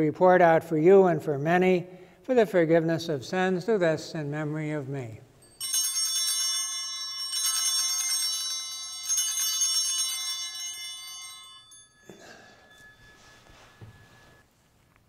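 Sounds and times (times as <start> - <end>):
altar bells jangling: 5.3 - 14.4.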